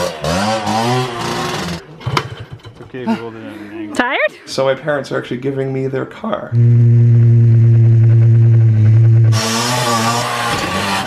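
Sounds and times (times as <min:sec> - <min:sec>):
dirt bike engine revving: 0:00.0 - 0:02.4, 0:06.6 - 0:11.0.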